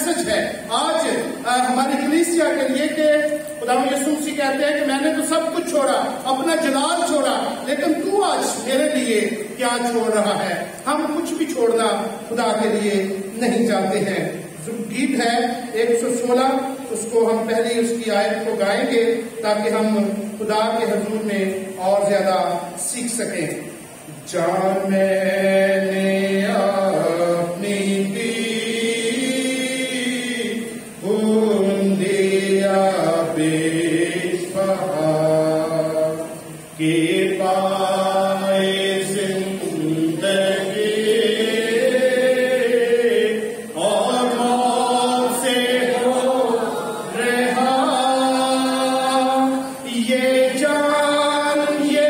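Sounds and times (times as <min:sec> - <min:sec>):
man singing a hymn: 0:24.3 - 0:52.0.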